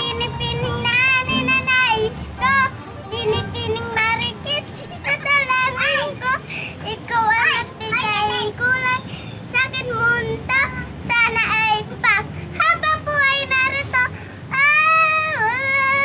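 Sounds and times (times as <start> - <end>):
girl singing: 0.0 - 16.0.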